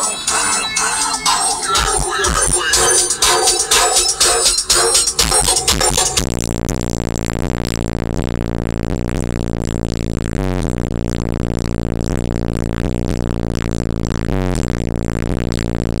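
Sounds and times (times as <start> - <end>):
bass-heavy electronic music: 0.0 - 16.0.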